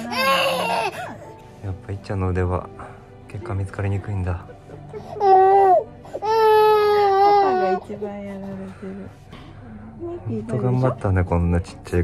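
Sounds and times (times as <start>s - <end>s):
toddler crying: 0.0s - 1.4s, 5.0s - 8.0s.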